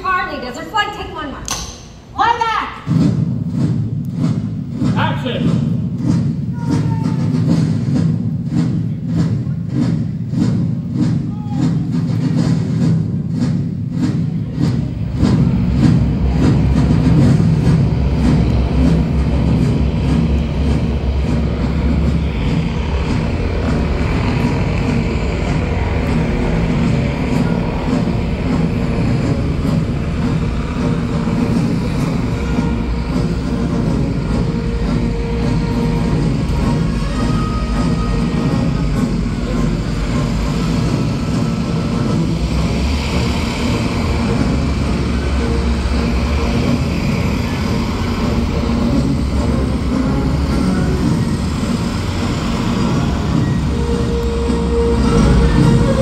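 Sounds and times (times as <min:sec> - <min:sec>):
music playing: 0:02.2 - 0:56.0
loud engine noise: 0:12.2 - 0:56.0.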